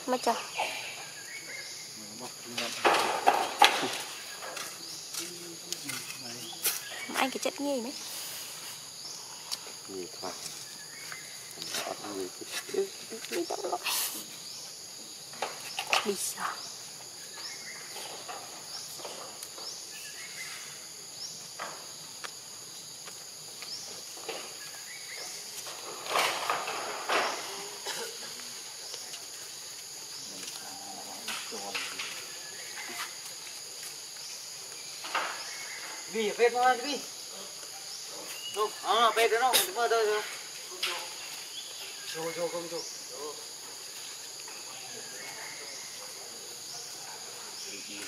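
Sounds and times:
high insect drone: 0:00.0 - 0:48.0.

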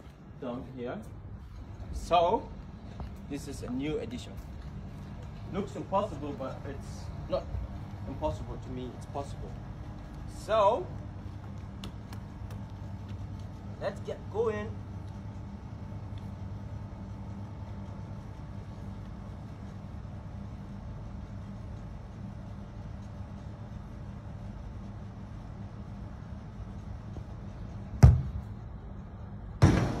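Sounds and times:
air conditioner units humming: 0:00.0 - 0:30.0
ball striking something: 0:28.0 - 0:28.4
football being kicked: 0:28.0 - 0:28.5.

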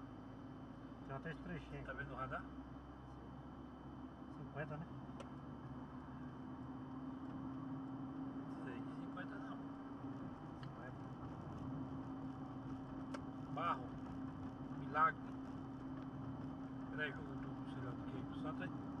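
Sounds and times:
car engine drone: 0:00.0 - 0:19.0
tyre and road noise: 0:10.2 - 0:19.0.

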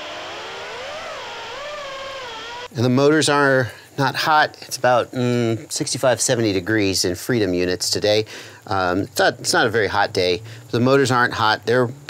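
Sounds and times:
drone motors whining: 0:00.0 - 0:02.7.

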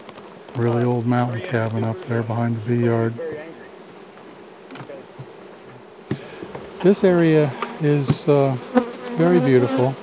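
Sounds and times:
honey bees buzzing: 0:00.0 - 0:10.0
faint knocks: 0:04.7 - 0:06.8.

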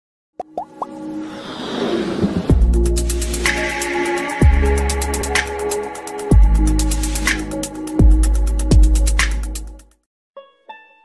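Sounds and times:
musical riser: 0:00.8 - 0:06.3.

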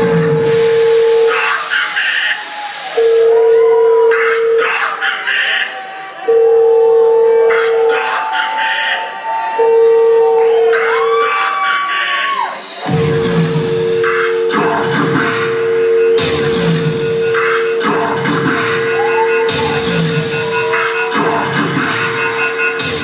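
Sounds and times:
electronic dance music: 0:00.0 - 0:23.0.

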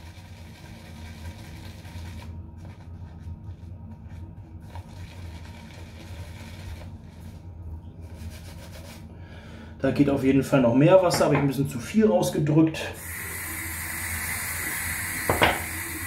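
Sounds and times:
shaving brush scrubbing soap: 0:00.0 - 0:09.1, 0:13.0 - 0:16.0.

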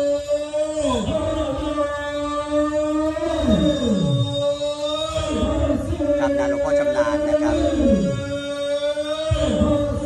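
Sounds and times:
voices chanting a long note: 0:00.0 - 0:10.0.

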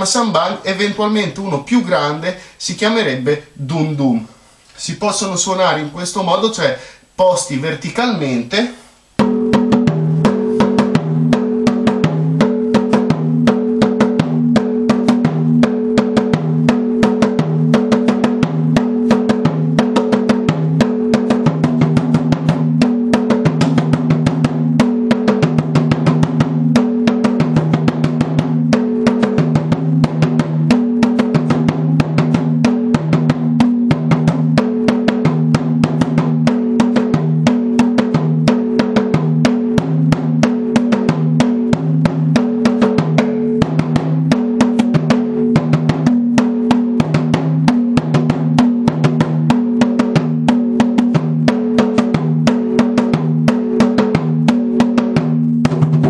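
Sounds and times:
bass drums struck in rhythm: 0:00.0 - 0:56.0.

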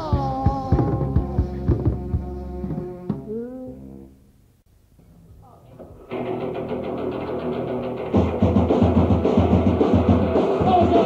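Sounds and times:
drum hits thudding: 0:00.2 - 0:03.3.

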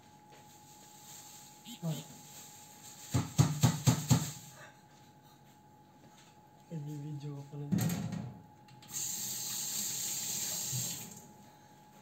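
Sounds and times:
running water hiss: 0:08.9 - 0:11.2.

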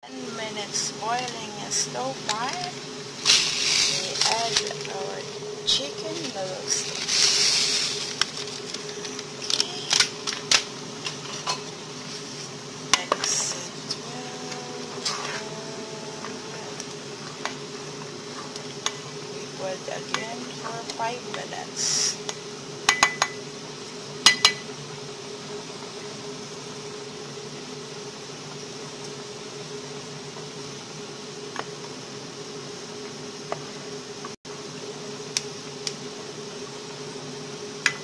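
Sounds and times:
low hum: 0:00.1 - 0:24.6
hissing: 0:03.1 - 0:10.0.

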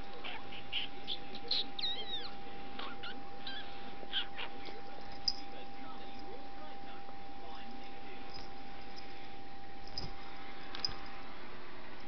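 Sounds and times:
scratching on bedding: 0:00.0 - 0:11.2.

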